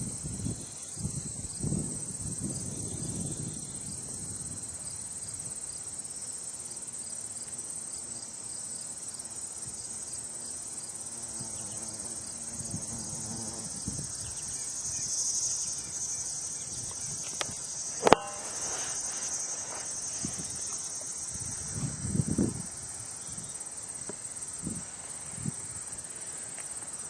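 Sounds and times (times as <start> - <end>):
high-pitched insect trill: 0.0 - 27.0
sharp click: 17.2 - 19.0.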